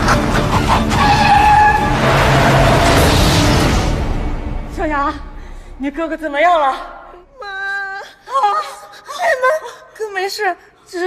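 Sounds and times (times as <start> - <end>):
car tyres screeching: 0.9 - 3.6.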